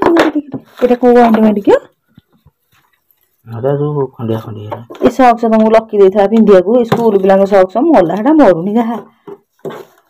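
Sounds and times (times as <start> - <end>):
person speaking: 3.4 - 5.8.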